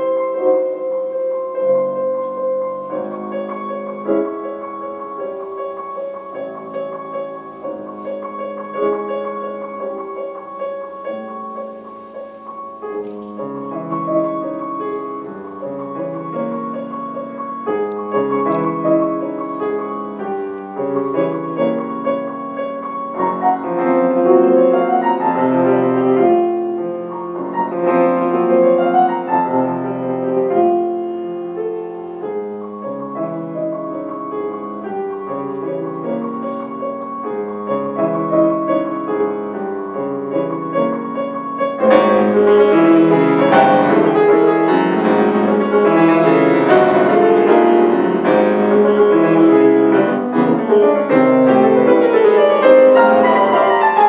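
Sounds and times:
grand piano playing: 0.0 - 54.0.

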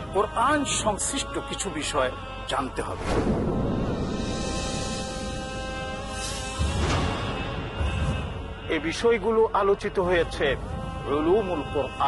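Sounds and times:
background music: 0.0 - 12.0
deep low booms: 3.0 - 6.0
swishing sweeps: 3.0 - 6.5.

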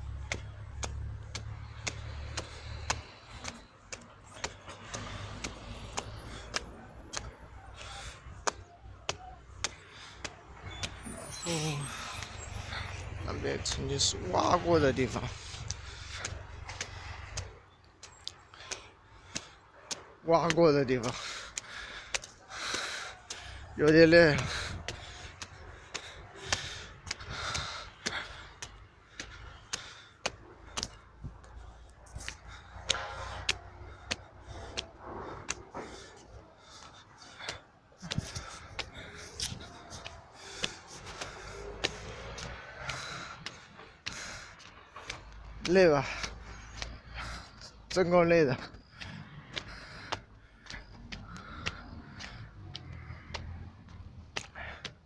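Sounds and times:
footsteps on stone stairs: 0.0 - 55.0
heavy breathing: 0.0 - 55.0.

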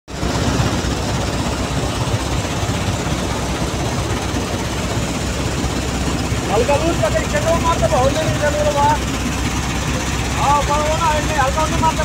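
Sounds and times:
vibrating screen machinery drone: 0.1 - 12.0.

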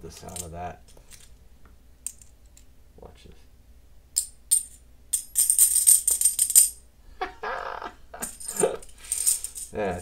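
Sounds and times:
coins clinking together: 4.2 - 6.8, 8.2 - 9.8.

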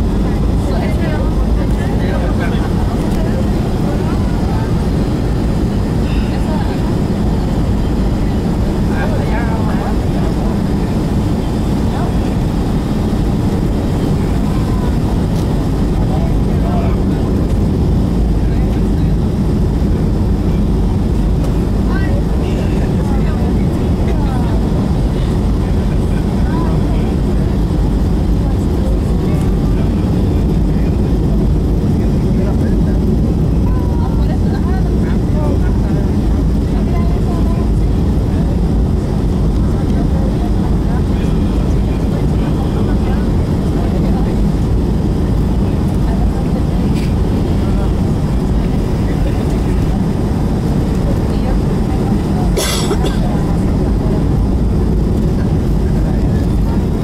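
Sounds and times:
jet engines roaring in cabin: 0.0 - 57.0.

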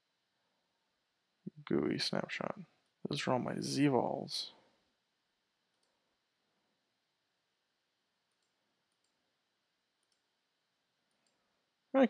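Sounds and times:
faint computer mouse clicks: 5.7 - 6.0, 8.3 - 9.2, 10.0 - 10.3, 11.1 - 11.4.

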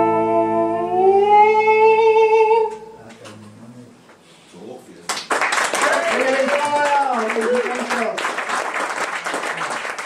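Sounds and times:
bass and guitar: 0.0 - 3.1.

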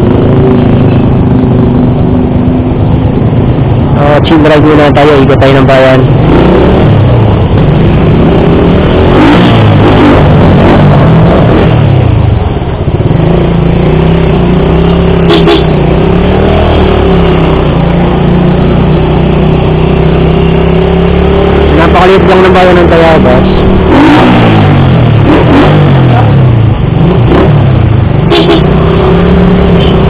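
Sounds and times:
motorcycle engine running: 0.0 - 30.0.

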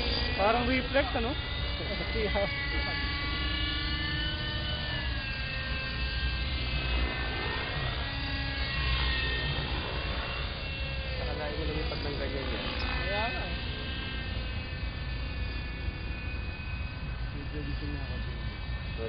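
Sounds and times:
radio-controlled helicopter flying: 0.0 - 19.0.

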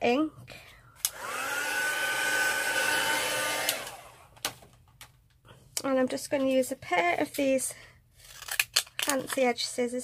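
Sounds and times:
heat gun fan whine: 1.0 - 4.4.

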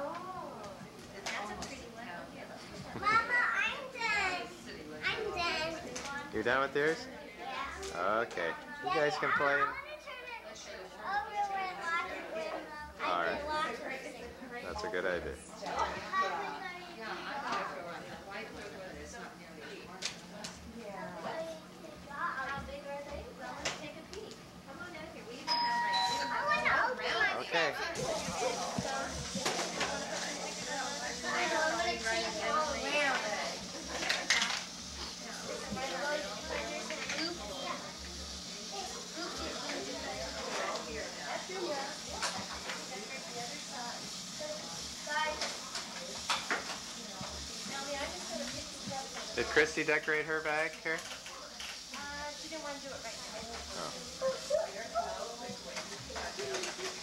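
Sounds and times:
young children chattering: 0.0 - 57.0
young child's voice: 3.0 - 6.2
steady hiss: 26.2 - 57.0.

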